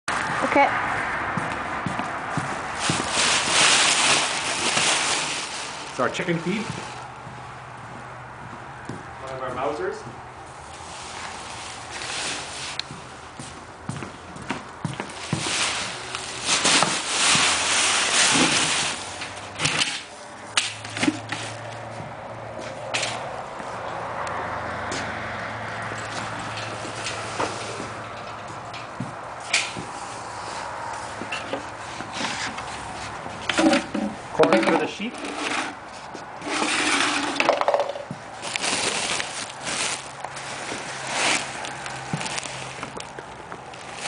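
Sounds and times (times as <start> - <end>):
footsteps on hard floor: 0.2 - 3.2, 6.5 - 9.2, 12.8 - 15.6, 26.2 - 30.0
plastic sacks rustling: 2.3 - 7.2, 10.6 - 13.2, 14.9 - 20.2, 36.4 - 44.0
plastic buckets knocking: 36.4 - 38.6.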